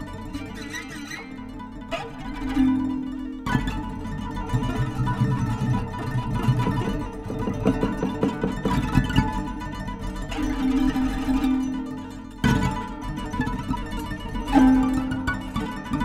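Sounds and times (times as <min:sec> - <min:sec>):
guitar strings struck and tapped: 0:00.0 - 0:16.0.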